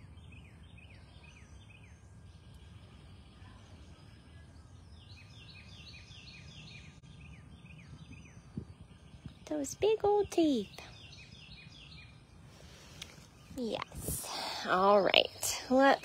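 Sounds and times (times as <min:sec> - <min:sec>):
faint low rumble: 0:00.0 - 0:16.0.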